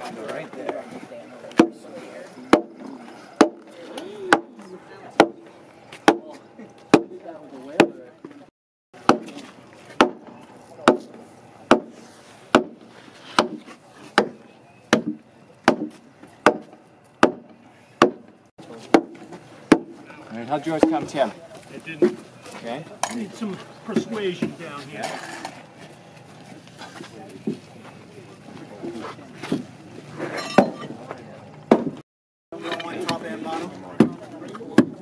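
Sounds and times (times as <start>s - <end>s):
wooden mallet striking wooden beam: 1.6s - 1.8s, 2.5s - 2.8s, 3.4s - 3.7s, 5.2s - 5.4s, 6.9s - 7.1s, 9.0s - 9.4s, 10.0s - 10.2s, 10.8s - 11.9s, 12.5s - 12.8s, 13.4s - 13.6s, 14.2s - 18.3s, 18.9s - 20.0s, 31.7s - 32.0s, 34.8s - 35.0s.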